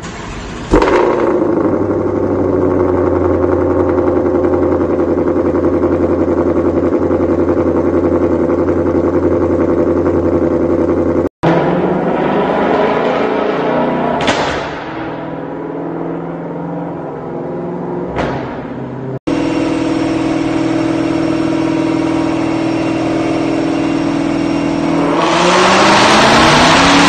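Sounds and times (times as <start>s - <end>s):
engine bang: 0.0s - 7.7s, 11.4s - 24.8s
car engine loud idle: 0.0s - 11.3s, 18.7s - 25.0s
car engine running under load: 0.0s - 27.0s.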